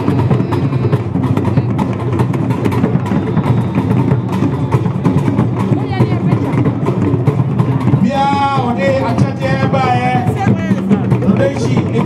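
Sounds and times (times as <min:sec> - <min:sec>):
loud music with rapid drums: 0:00.0 - 0:12.0.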